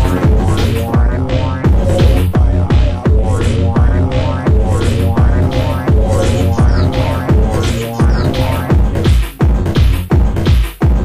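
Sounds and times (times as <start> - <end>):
electronic dance music: 0.0 - 10.7
steady kick drum: 0.0 - 11.0.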